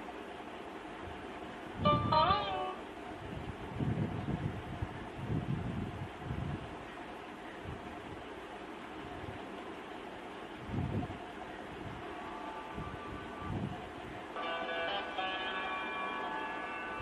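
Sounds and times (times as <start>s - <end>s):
background music: 14.4s - 17.0s.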